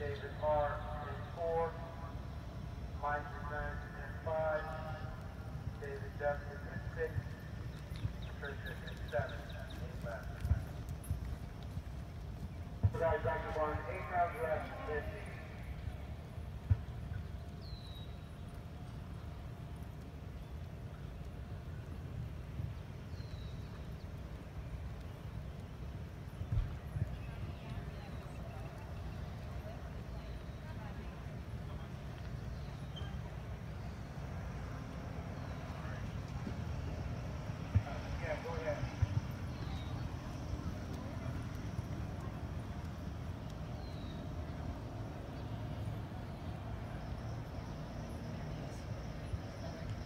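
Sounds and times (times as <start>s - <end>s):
distant voice over loudspeaker: 0.0s - 2.3s, 2.9s - 7.6s, 8.2s - 10.7s, 12.8s - 15.9s, 35.4s - 42.8s
low outdoor rumble: 0.0s - 50.0s
horse hoofbeats on sand: 4.7s - 33.2s, 35.3s - 44.4s
faint distant voices: 26.4s - 50.0s.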